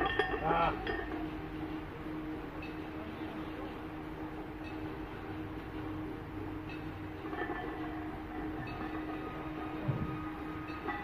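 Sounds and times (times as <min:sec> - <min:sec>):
weight plates clinking: 0:00.0 - 0:01.3, 0:06.6 - 0:11.0.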